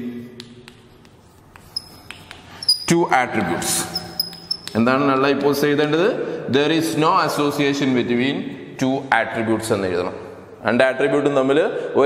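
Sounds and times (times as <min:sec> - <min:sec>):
chalk tapping and scratching: 0:00.4 - 0:02.9, 0:03.5 - 0:05.0
chalk squeaks: 0:00.9 - 0:05.0.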